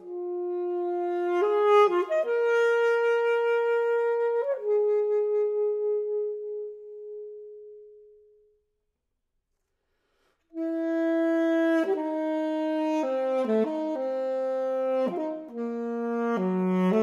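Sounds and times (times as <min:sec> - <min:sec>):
alto saxophone holding notes: 0:00.0 - 0:08.4, 0:10.5 - 0:17.0.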